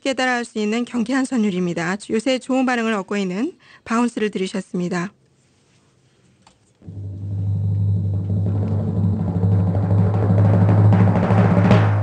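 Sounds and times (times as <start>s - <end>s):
deep low drum note: 6.8s - 12.0s.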